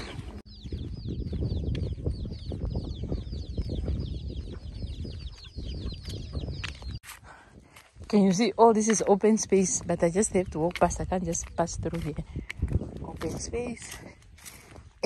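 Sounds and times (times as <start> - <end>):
chickens peeping: 0.0 - 7.0.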